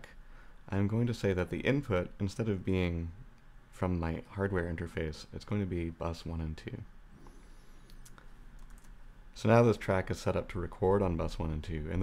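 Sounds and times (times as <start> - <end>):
low room hum: 0.0 - 12.0
computer keys or mouse clicks: 7.9 - 9.0.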